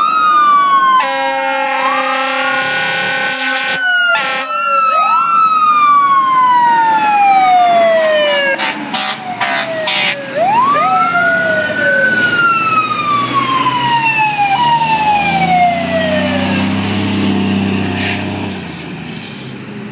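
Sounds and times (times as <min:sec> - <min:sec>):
diesel engine: 0:00.0 - 0:19.9
fire truck sirens wailing: 0:00.0 - 0:19.9
short horn blasts: 0:01.0 - 0:04.5, 0:08.6 - 0:10.2.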